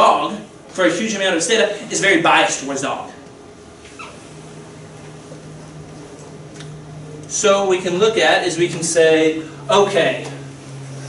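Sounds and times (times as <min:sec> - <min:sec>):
brief high squeak: 0:03.9 - 0:04.2.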